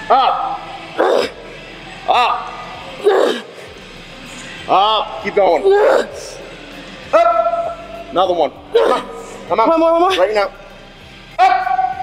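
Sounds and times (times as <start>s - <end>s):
person yelling: 11.4s - 12.0s.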